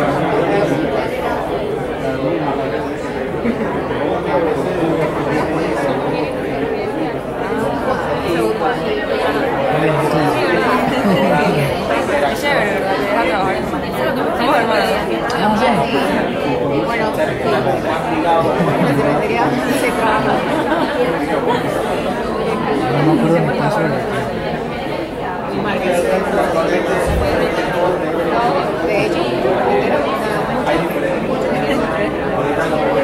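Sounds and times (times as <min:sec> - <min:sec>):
many people talking: 0:00.0 - 0:33.0.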